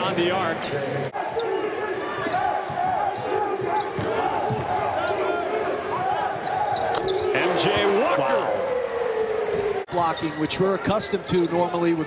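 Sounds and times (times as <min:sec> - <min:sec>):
sneakers squeaking on court: 0:02.2 - 0:07.4
basketball bouncing: 0:02.6 - 0:04.9.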